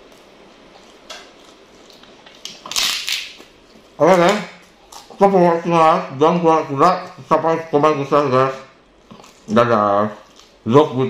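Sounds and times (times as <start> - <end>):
crunching a crispy cracker: 0.1 - 5.2.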